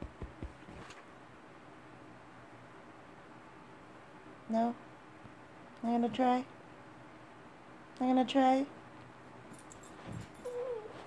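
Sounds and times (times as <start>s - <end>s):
dog whining: 10.4s - 11.0s.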